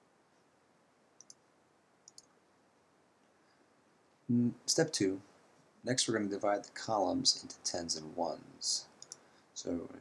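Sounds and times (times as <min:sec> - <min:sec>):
computer mouse clicks: 0:01.2 - 0:02.4, 0:08.9 - 0:09.3.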